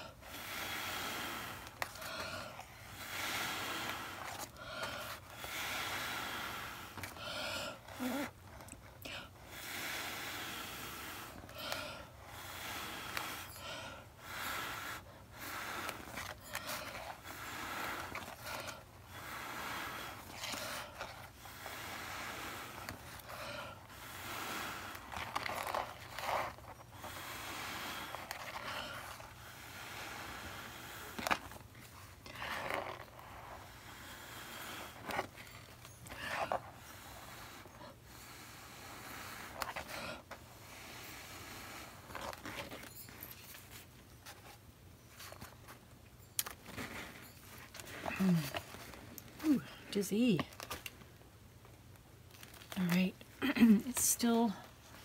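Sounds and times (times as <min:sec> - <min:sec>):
person blowing air: 0:00.0 - 0:08.4, 0:09.4 - 0:25.4, 0:27.0 - 0:31.6.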